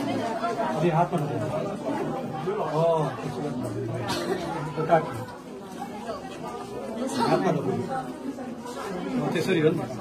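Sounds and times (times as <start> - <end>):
overlapping chatter of people: 0.0 - 10.0.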